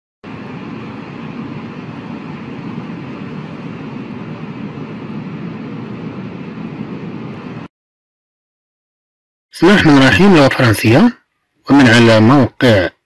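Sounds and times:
steady low noise: 0.2s - 7.7s.

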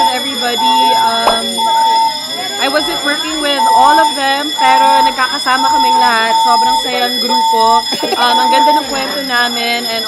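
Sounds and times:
woman talking: 0.0s - 1.7s, 2.6s - 10.0s
flat electronic tone: 0.0s - 10.0s.

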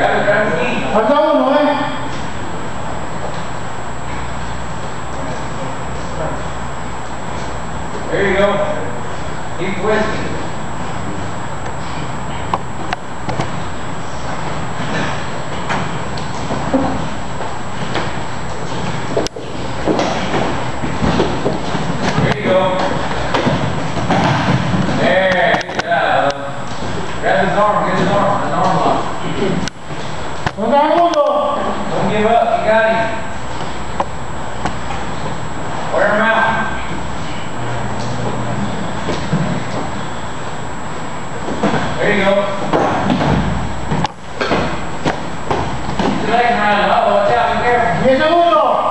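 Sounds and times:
people talking: 0.0s - 2.1s, 5.1s - 6.6s, 8.0s - 11.2s, 22.1s - 23.1s, 24.9s - 29.7s, 30.5s - 33.3s, 35.9s - 37.1s, 41.6s - 43.0s, 46.1s - 48.9s
bodies thumping on mat: 14.3s - 25.6s, 42.6s - 46.4s.

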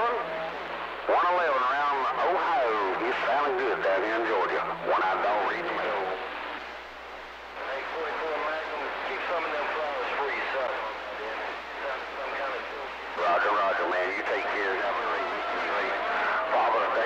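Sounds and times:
voice over radio speaker: 0.0s - 6.4s, 7.6s - 17.0s
radio static hiss: 0.0s - 17.0s.

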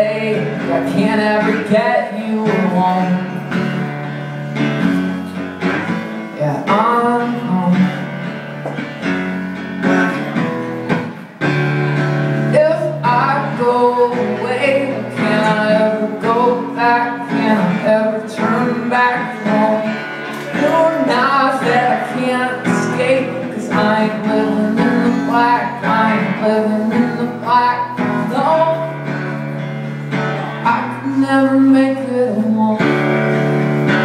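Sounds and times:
man singing: 0.0s - 3.9s, 6.2s - 8.4s, 11.9s - 34.0s
acoustic guitar strumming: 0.0s - 34.0s.

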